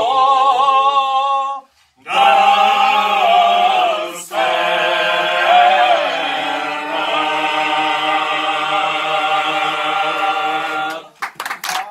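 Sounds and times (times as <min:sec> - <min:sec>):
men's choir singing unaccompanied: 0:00.0 - 0:11.2.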